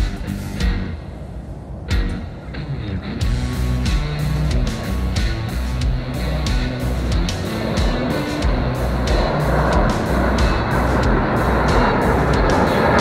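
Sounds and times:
music with steady beat: 0:00.0 - 0:01.0, 0:01.9 - 0:02.3, 0:03.2 - 0:13.0
jet aircraft engine noise: 0:00.0 - 0:13.0.

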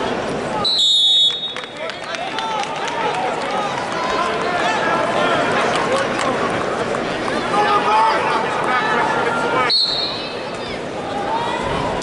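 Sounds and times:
arena crowd noise: 0:00.0 - 0:12.0
crowd voices: 0:00.0 - 0:12.0
people clapping: 0:01.1 - 0:09.4.

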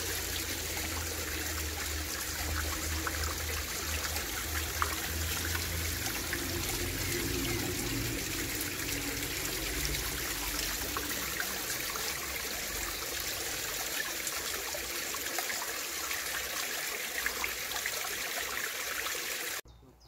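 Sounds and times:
spring water trickling down stone steps: 0:00.0 - 0:19.6
water dripping: 0:00.0 - 0:19.6.

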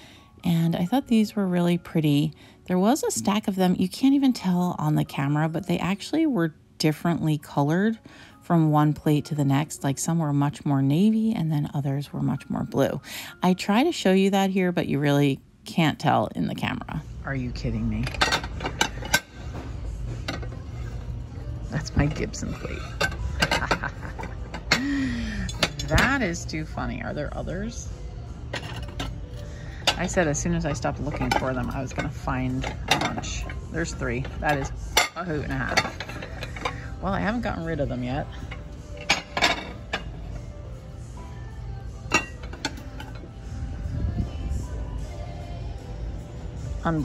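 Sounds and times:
ceramic plates clinking: 0:18.0 - 0:26.3, 0:28.5 - 0:40.4, 0:42.1 - 0:43.3.

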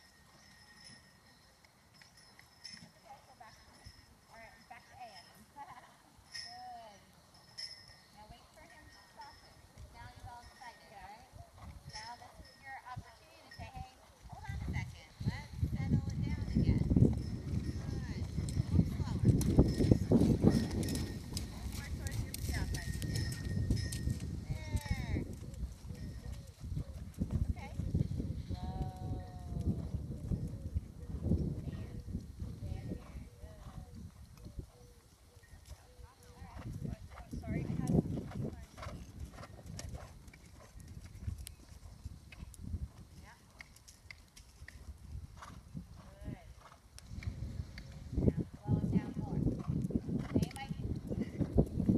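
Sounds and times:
horse hoofbeats on sand: 0:14.4 - 0:26.5.

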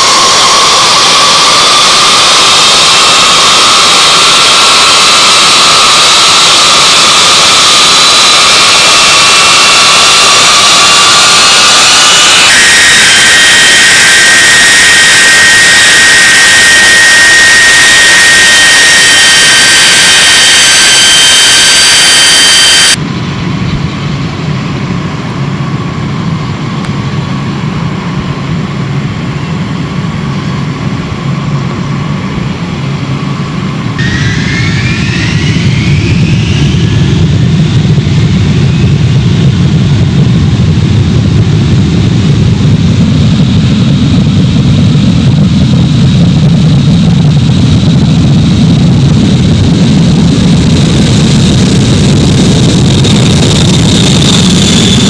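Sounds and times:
jet engines whining: 0:00.0 - 0:55.0
distant jet engine rumble: 0:23.0 - 0:55.0.

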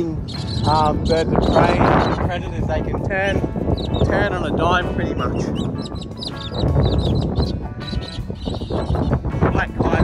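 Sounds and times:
birds calling overhead: 0:00.0 - 0:02.6, 0:03.3 - 0:10.0
wind rumble on microphone: 0:00.0 - 0:10.0.

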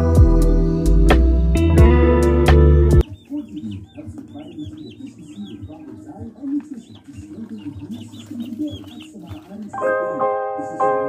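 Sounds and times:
piano music: 0:00.0 - 0:03.0, 0:09.7 - 0:11.0
high repeated chirps: 0:03.0 - 0:09.9
chickens clucking: 0:03.0 - 0:11.0.

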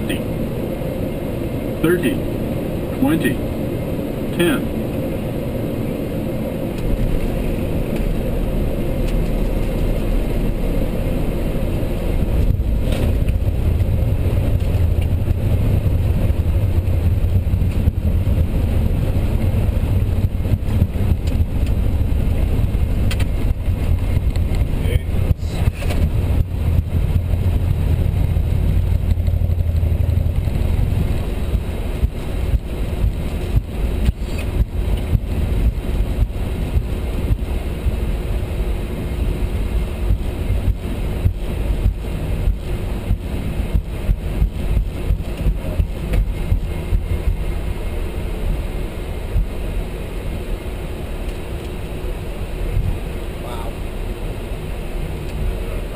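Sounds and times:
heavy low rumble: 0:00.0 - 0:55.9
bumps and rattles: 0:12.2 - 0:37.5.

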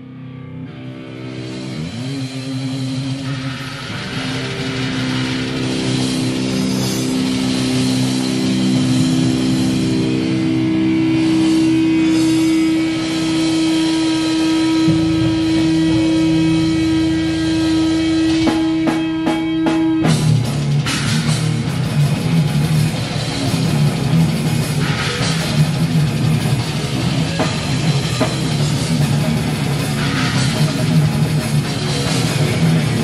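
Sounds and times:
distorted electric guitars: 0:00.0 - 0:33.0.

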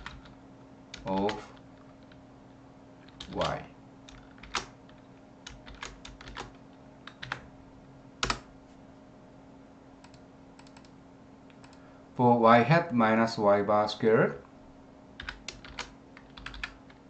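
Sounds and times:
computer keyboard keystrokes: 0:00.0 - 0:02.2, 0:03.0 - 0:07.4, 0:08.2 - 0:08.5, 0:10.0 - 0:10.9, 0:11.5 - 0:11.8, 0:15.2 - 0:17.0
faint steady hum: 0:00.0 - 0:17.0.

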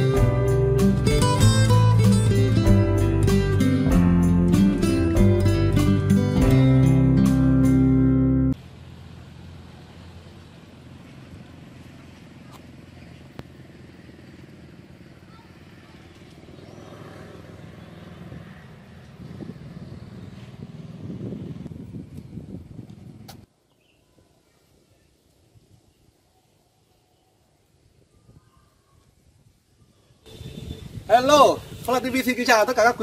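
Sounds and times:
motorbike engine passing: 0:00.0 - 0:23.5
faint voices: 0:11.4 - 0:17.3.

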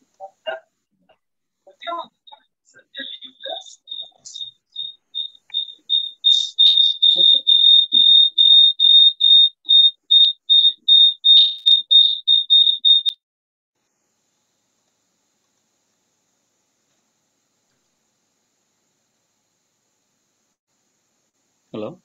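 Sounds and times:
high-pitched electronic beeps: 0:03.0 - 0:13.2.

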